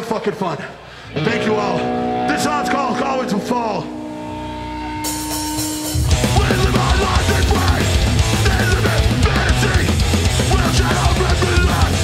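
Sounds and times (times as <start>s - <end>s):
electric guitar note ringing: 1.2s - 6.3s.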